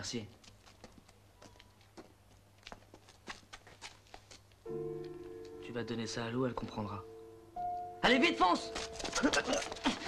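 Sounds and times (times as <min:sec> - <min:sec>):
faint footsteps and scuffs: 0:00.3 - 0:05.7
music with held chord: 0:04.7 - 0:08.8.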